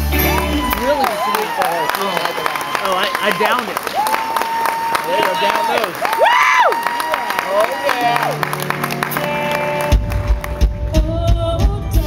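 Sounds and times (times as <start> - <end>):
drums and bass beat: 0.0 - 1.0, 9.9 - 12.0
live band playing: 0.0 - 5.6, 6.4 - 12.0
audience applause and whoops: 0.0 - 11.0.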